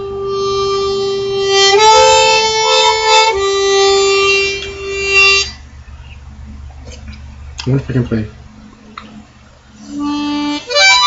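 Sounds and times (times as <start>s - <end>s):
harmonica chord: 0.0s - 6.2s, 9.7s - 11.0s.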